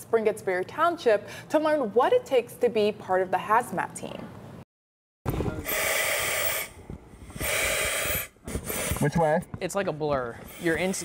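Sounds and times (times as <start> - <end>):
heavy breathing through air mask: 5.6 - 9.1, 10.3 - 11.0.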